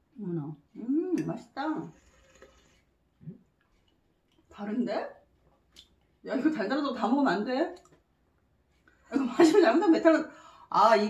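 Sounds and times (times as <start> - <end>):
sipping juice from cup: 1.8 - 4.5.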